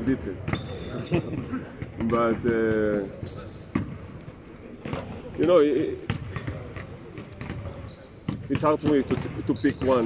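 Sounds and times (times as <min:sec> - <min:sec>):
basketballs bouncing on hardwood: 0:04.8 - 0:10.0.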